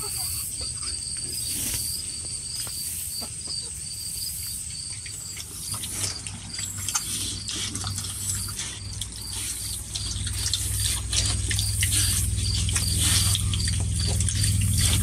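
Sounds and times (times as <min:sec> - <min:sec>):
hens clucking: 0:00.0 - 0:15.0.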